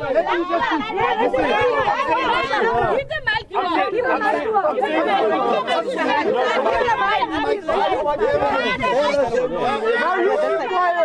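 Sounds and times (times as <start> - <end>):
people arguing: 0.0 - 11.0.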